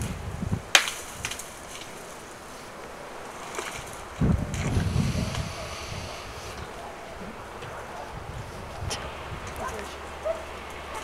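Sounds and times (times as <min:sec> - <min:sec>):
wind gusting on microphone: 0:00.0 - 0:11.0.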